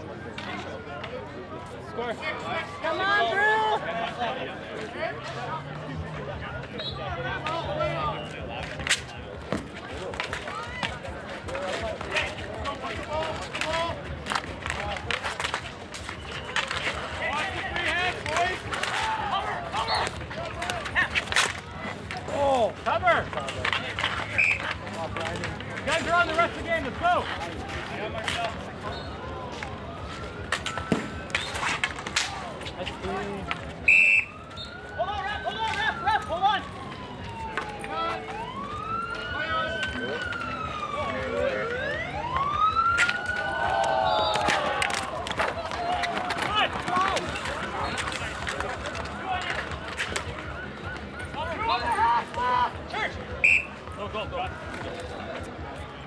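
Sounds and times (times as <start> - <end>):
hockey sticks clicking on asphalt: 0.0 - 56.0
outdoor chatter: 0.0 - 56.0
siren wailing: 29.9 - 32.0, 32.8 - 52.8.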